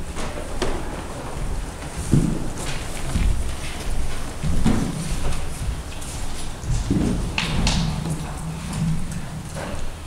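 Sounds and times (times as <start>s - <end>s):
low room rumble: 0.0s - 10.0s
soft footsteps: 0.0s - 10.0s.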